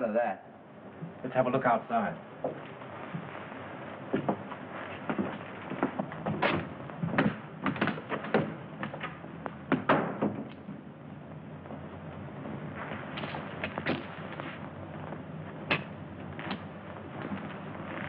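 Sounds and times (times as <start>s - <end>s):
footsteps on wooden step: 4.1s - 10.8s.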